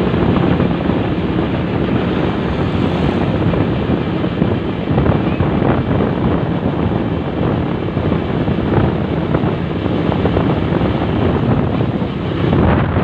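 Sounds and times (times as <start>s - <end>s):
motorcycle running: 0.0s - 13.0s
wind rushing over microphone: 0.0s - 13.0s.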